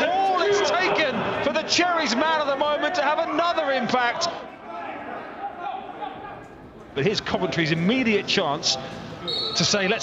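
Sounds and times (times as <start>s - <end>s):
empty stadium ambience: 0.0s - 10.0s.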